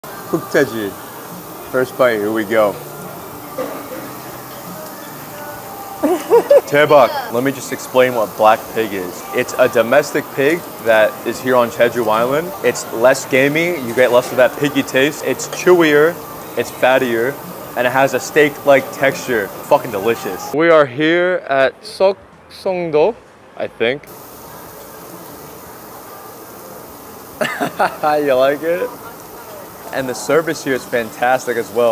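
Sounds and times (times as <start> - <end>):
restaurant background hiss: 0.0 - 31.9
soft background music: 0.0 - 31.9.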